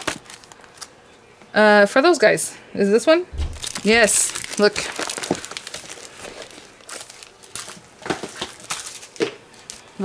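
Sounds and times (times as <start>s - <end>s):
plastic sleeves crinkling: 0.0s - 0.9s, 3.4s - 10.0s.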